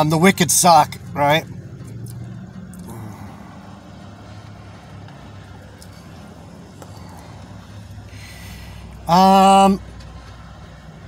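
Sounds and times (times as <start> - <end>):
motor vehicle hum inside car: 0.0 - 11.0.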